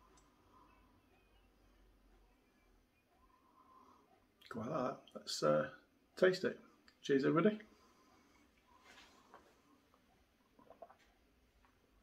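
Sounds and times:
man sipping beer: 0:10.5 - 0:11.2.

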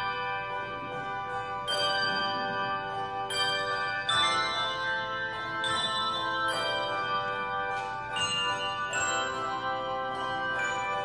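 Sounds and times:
handbells ringing chords: 0:00.0 - 0:11.0.

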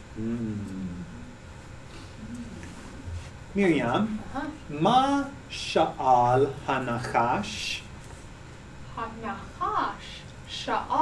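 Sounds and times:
person humming: 0:00.2 - 0:01.4, 0:02.2 - 0:03.2.

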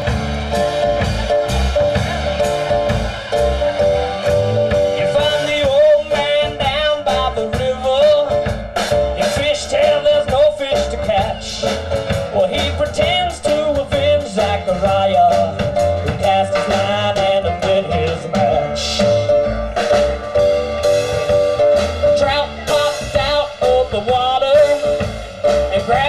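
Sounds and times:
wavering melody line: 0:00.0 - 0:07.1
drum kit beat: 0:00.0 - 0:26.0
upright bass walking: 0:00.0 - 0:26.0.

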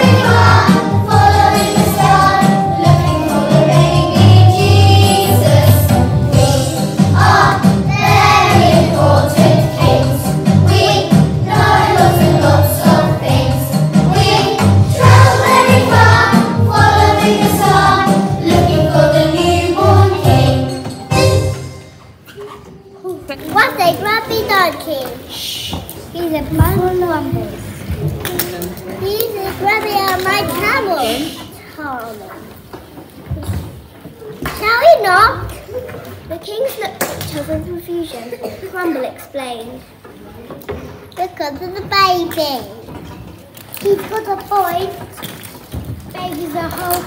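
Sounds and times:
children singing: 0:00.0 - 0:21.7
backing track with steady beat: 0:00.0 - 0:22.2
young children's voices: 0:22.5 - 0:28.2, 0:28.9 - 0:40.0, 0:41.2 - 0:43.0, 0:43.7 - 0:45.2, 0:46.0 - 0:47.0.

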